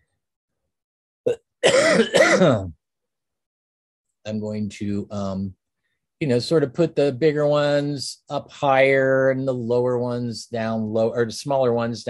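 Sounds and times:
man clearing throat: 1.3s - 2.8s.

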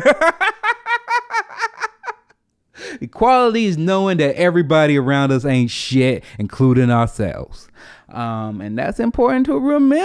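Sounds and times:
man giggling: 0.0s - 2.3s
man breathing: 2.7s - 3.1s, 7.7s - 8.1s
man speaking: 3.0s - 10.0s.

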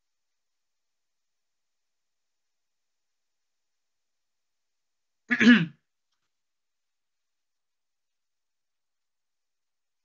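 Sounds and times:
man clearing throat: 5.3s - 5.8s.

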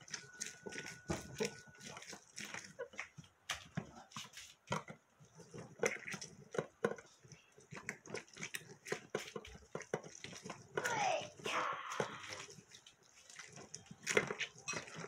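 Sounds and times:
oranges squelching on hand juicer: 0.0s - 15.0s.

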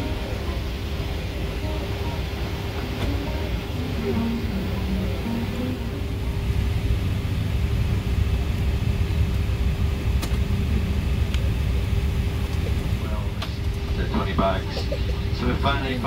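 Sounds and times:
aircraft air conditioning rumble: 0.0s - 16.0s.

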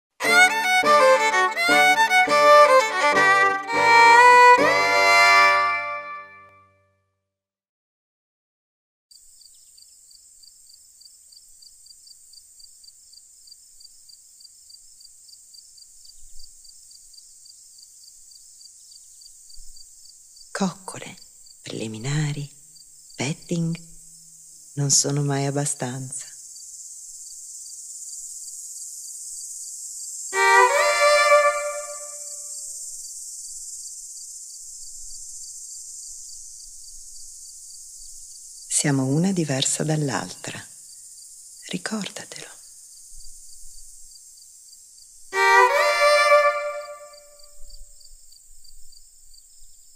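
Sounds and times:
crickets chirping: 0.2s - 5.9s, 9.1s - 49.9s
high-pitched hiss: 0.2s - 6.3s, 9.1s - 49.9s
music: 0.2s - 7.3s, 30.4s - 32.6s, 45.4s - 47.5s.

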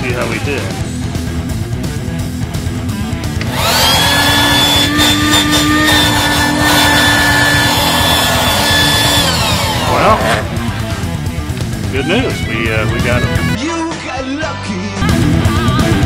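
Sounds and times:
electric air pump whining: 3.4s - 11.2s.

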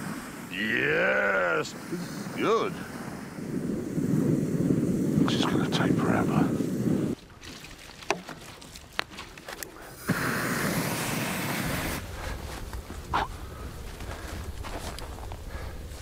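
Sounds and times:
petrol splashing with hiss: 0.0s - 13.4s
fire rumbling and crackling: 0.0s - 16.0s.

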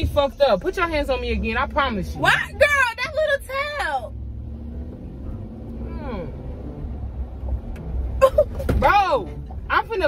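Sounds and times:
engine rumble inside car cabin: 0.0s - 10.0s
road noise: 0.0s - 10.0s.

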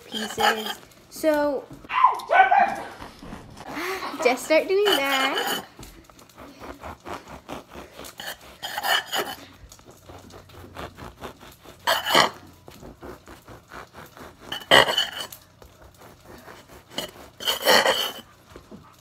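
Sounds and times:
knife sawing bread: 0.0s - 1.4s, 2.7s - 19.0s.

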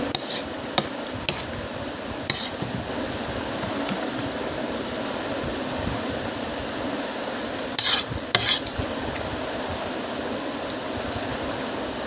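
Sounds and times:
steady background hum: 0.0s - 12.0s
steady background noise: 0.0s - 12.0s
fork scraping plastic food box: 0.1s - 1.5s, 2.3s - 2.7s, 7.8s - 8.7s.

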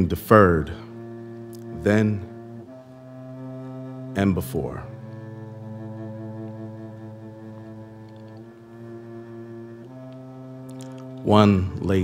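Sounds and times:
cello bowed low notes: 0.0s - 12.0s.

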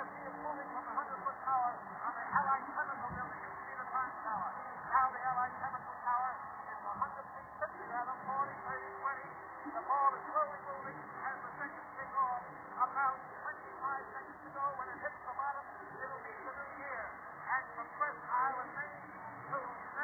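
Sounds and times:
muffled speech through speakers: 0.0s - 20.0s.

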